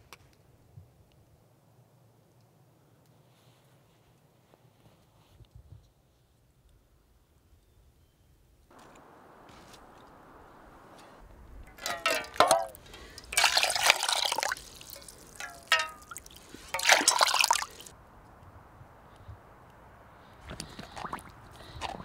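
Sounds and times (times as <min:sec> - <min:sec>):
water pouring into metal pot: 0:11.7 - 0:17.9.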